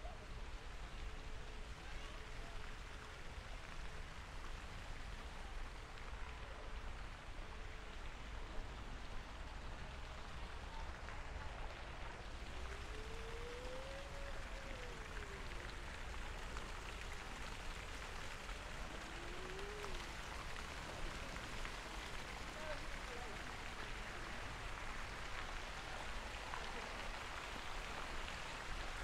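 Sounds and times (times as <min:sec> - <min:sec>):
fountain water splashing: 0:00.0 - 0:29.0.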